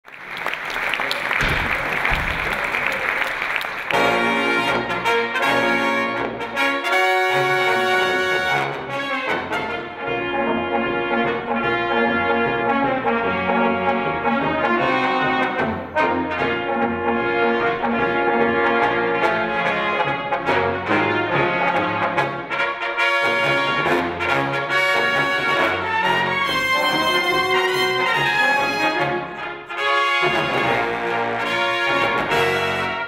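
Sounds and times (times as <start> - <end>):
brass ensemble playing a tune: 2.0 - 33.0.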